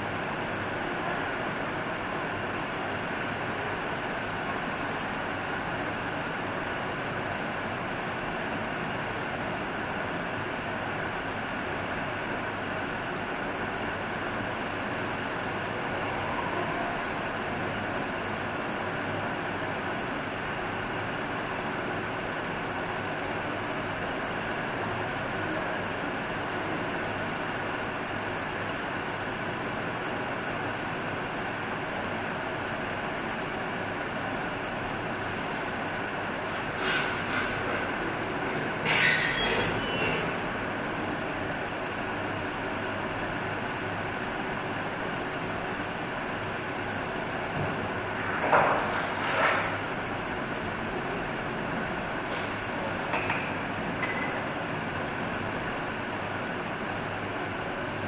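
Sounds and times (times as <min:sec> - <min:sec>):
steady background noise: 0:00.0 - 0:58.0.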